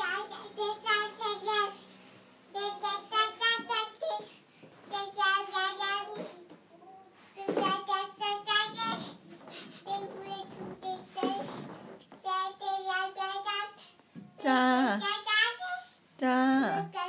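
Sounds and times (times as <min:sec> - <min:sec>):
toddler girl babbling sing-song: 0:00.0 - 0:17.0.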